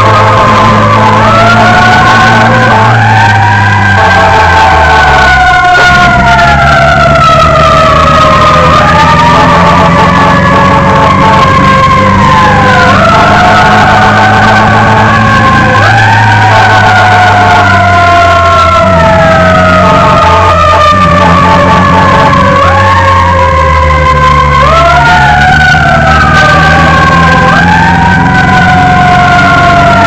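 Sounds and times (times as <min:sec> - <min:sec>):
emergency vehicle siren wailing: 0:00.0 - 0:30.0.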